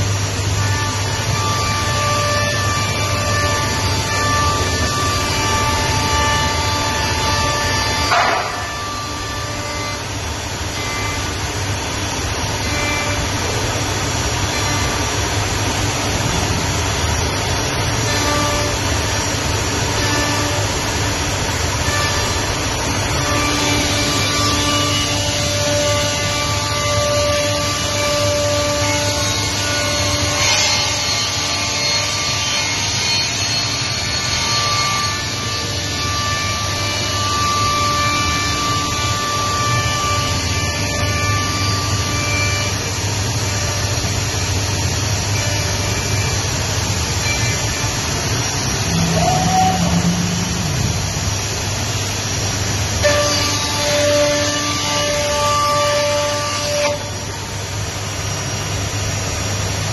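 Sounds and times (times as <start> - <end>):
cnc machine routing wood: 0.0 - 59.9.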